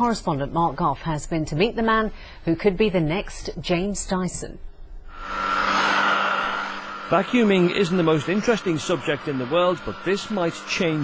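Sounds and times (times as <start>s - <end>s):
vacuum cleaner running on carpet: 5.1s - 11.0s.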